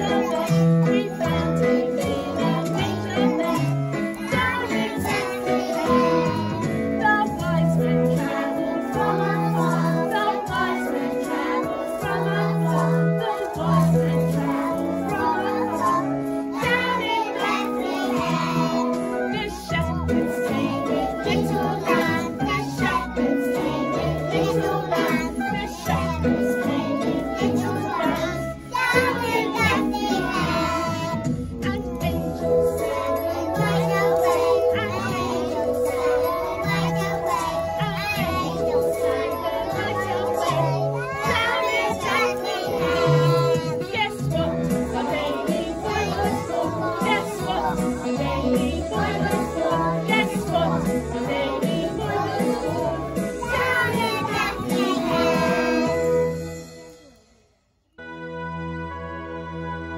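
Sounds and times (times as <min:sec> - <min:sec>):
children singing: 0:00.0 - 0:56.3
instrumental accompaniment: 0:00.0 - 0:59.9.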